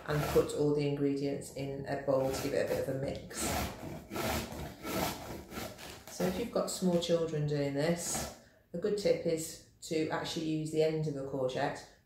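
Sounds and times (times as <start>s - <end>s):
vegetable grated on metal grater: 0.0s - 0.6s, 2.1s - 6.4s.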